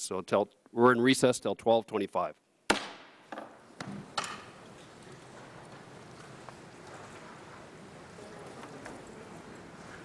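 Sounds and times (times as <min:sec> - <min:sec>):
gavel strike echo: 0:02.7 - 0:04.4
murmur of room noise: 0:02.7 - 0:10.0.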